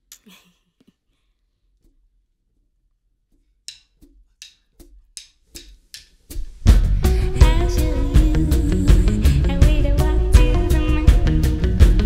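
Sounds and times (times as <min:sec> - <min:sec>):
drumstick clicks: 0:03.7 - 0:06.2.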